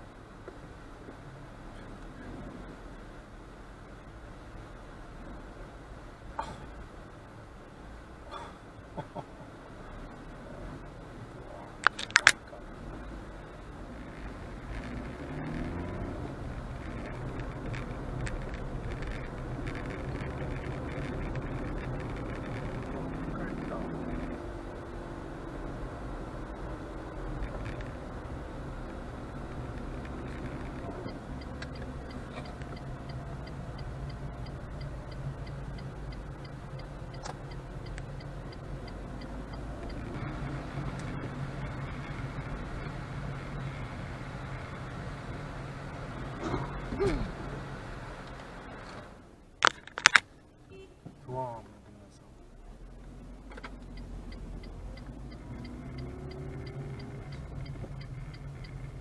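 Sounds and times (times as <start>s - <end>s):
car engine: 0.0s - 59.0s
road noise: 0.0s - 59.0s
fast regular ticking: 16.6s - 24.3s, 29.4s - 42.8s, 53.8s - 59.0s.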